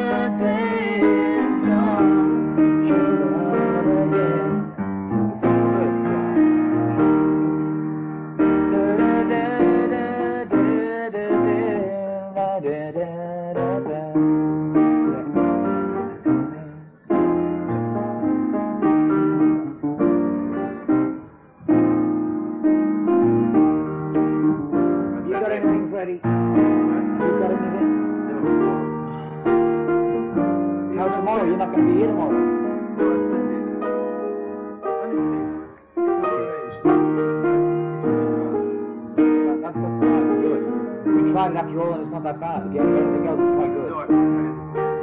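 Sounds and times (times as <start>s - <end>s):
person singing: 0.0s - 7.6s, 8.4s - 17.5s, 20.1s - 21.8s, 24.8s - 45.0s
piano playing slow chords: 0.0s - 45.0s.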